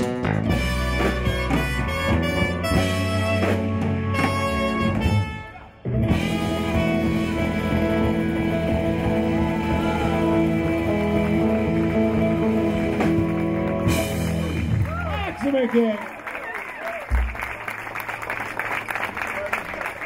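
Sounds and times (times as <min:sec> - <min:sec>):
live rock band playing: 0:00.0 - 0:15.7.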